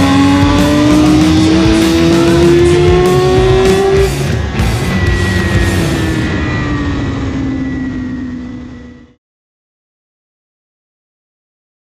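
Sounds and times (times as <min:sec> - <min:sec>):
loud engine drone: 0:00.0 - 0:09.2
rushing noise: 0:00.0 - 0:09.2.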